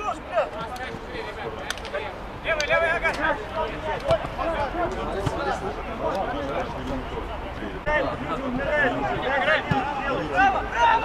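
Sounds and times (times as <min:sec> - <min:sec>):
players calling out: 0:00.0 - 0:11.0.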